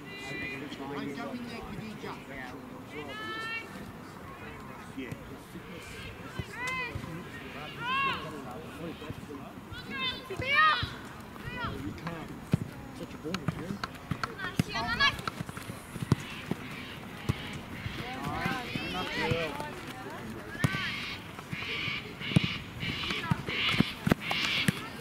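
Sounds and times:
people shouting: 0:16.3 - 0:19.6.

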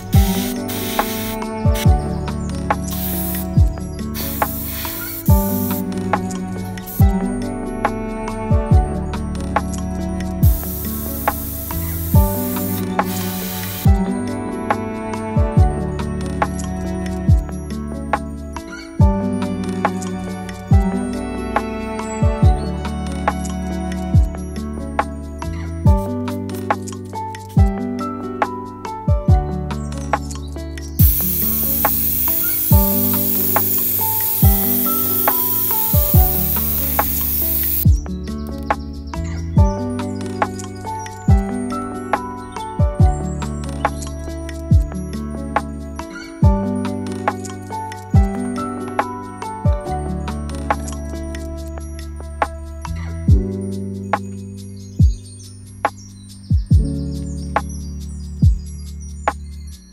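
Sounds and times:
airbrush spraying hiss: 0:00.0 - 0:01.9, 0:02.8 - 0:05.9, 0:06.8 - 0:07.2, 0:10.4 - 0:14.0, 0:31.0 - 0:37.8
background music with drum beat: 0:00.0 - 0:07.3, 0:10.4 - 0:14.1, 0:17.3 - 0:17.6, 0:24.1 - 0:25.2, 0:25.8 - 0:27.8, 0:28.4 - 0:29.5, 0:31.0 - 0:41.6, 0:42.2 - 0:47.5, 0:48.2 - 0:50.0, 0:51.6 - 0:54.4, 0:55.0 - 0:55.3, 0:55.9 - 0:57.8, 0:58.4 - 0:58.7.

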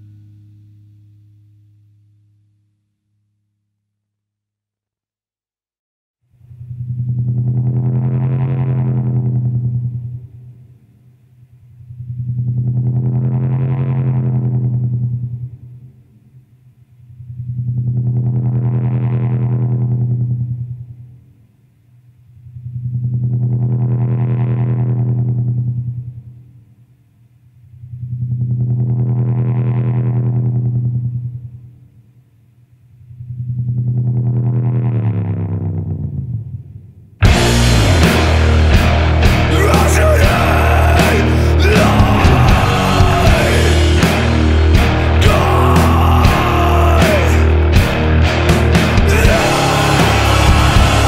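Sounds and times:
distorted electric guitar chord: 0:00.0 - 0:01.9, 0:37.2 - 0:51.0.

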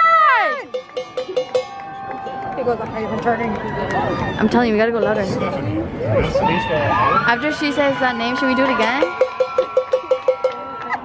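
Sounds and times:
cowbell shaken rapidly: 0:00.6 - 0:02.4, 0:08.7 - 0:10.7.

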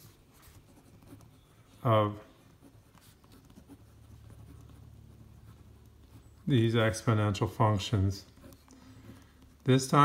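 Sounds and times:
pen scratching on paper: 0:00.0 - 0:01.8, 0:02.4 - 0:10.0.

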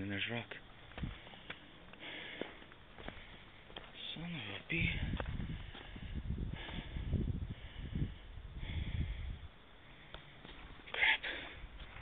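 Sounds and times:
footsteps scuffing on sandstone: 0:00.5 - 0:06.0, 0:10.4 - 0:10.9.

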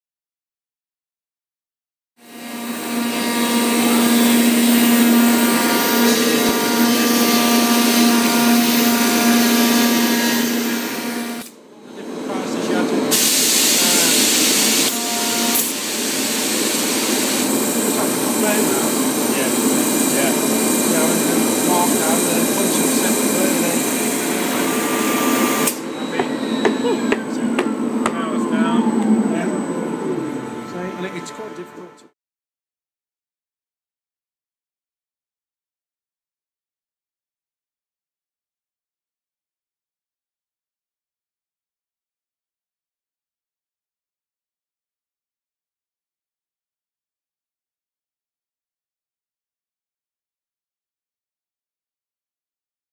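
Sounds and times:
cnc router spindle hum: 0:02.2 - 0:31.9.

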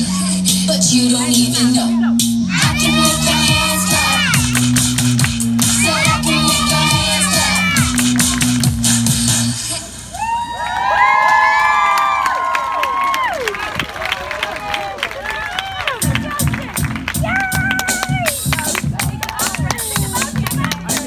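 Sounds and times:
music with steady low beat: 0:00.0 - 0:09.6
backing music: 0:00.0 - 0:10.2, 0:15.9 - 0:21.0
audience clapping: 0:04.0 - 0:09.0, 0:10.6 - 0:21.0
audience cheering and whooping: 0:05.7 - 0:08.4, 0:10.0 - 0:16.1, 0:17.2 - 0:18.4.

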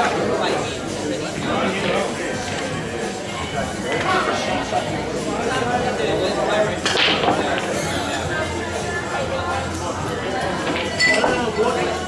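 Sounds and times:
pool balls scattering: 0:06.8 - 0:07.8
pool break shot crack: 0:06.8 - 0:07.8.

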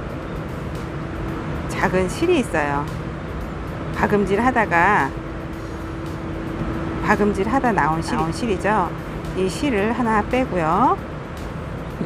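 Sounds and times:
faint constant hum: 0:00.0 - 0:12.0
low background rumble: 0:00.0 - 0:12.0.

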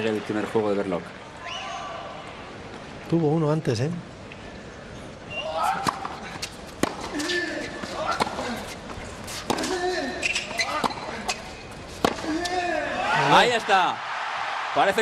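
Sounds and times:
rackets hitting tennis ball: 0:05.6 - 0:13.1.

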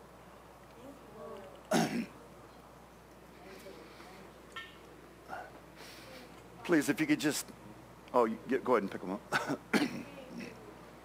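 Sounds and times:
man clearing throat: 0:01.7 - 0:02.1, 0:09.3 - 0:10.5.

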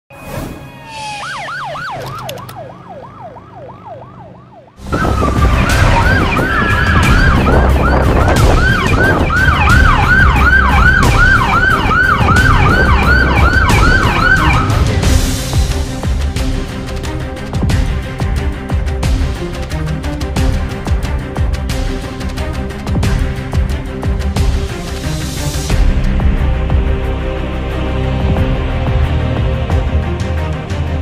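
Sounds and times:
ambulance siren yelping: 0:00.5 - 0:15.1.

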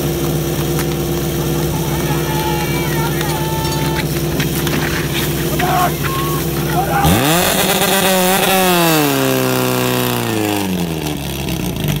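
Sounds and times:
fire pump engine running: 0:00.0 - 0:12.0.

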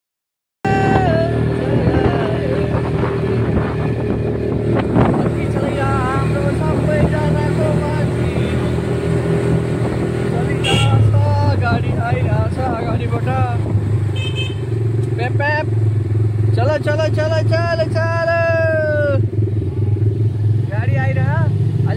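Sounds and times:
voices: 0:00.6 - 0:09.3, 0:10.0 - 0:15.7, 0:16.5 - 0:21.9
quad bike engine running: 0:00.7 - 0:21.9.

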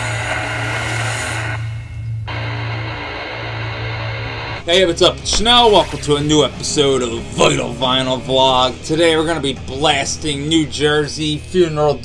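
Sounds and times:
heavy metal distorted guitars: 0:00.0 - 0:12.0.

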